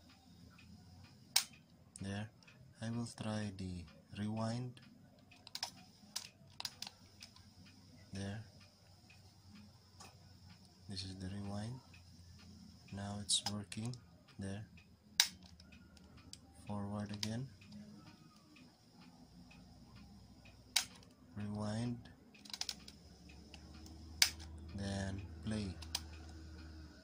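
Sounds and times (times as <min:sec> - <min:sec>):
light ticks: 0:00.0 - 0:27.0
cassette tape mechanism fast-forwarding: 0:04.4 - 0:27.0.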